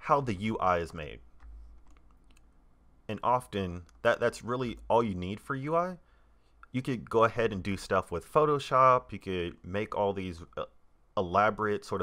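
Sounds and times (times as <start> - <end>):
low steady hum: 0.0 - 12.0
computer mouse clicks: 1.3 - 2.6, 3.8 - 4.0.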